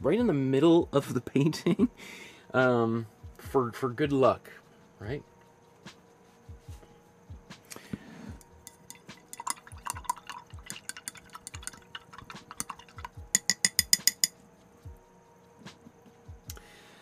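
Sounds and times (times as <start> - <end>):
brush swishing in water jar: 8.7 - 13.2
ringing taps on glass jar: 8.7 - 14.4.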